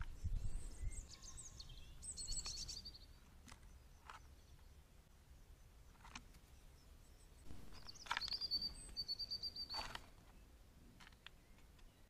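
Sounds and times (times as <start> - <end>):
bird trilling: 7.7 - 10.0.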